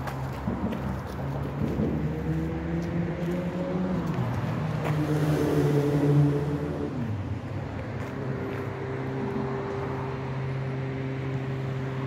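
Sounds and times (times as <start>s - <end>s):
traffic engine hum: 0.0s - 12.0s.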